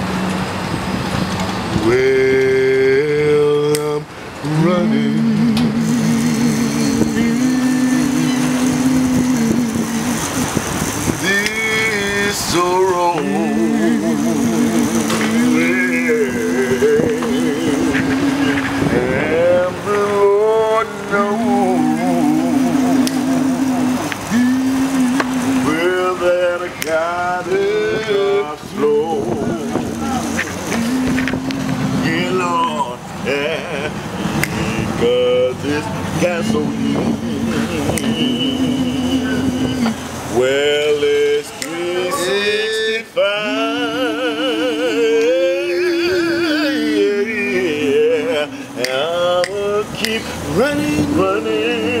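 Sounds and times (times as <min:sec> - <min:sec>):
men singing in harmony: 0:01.6 - 0:52.0.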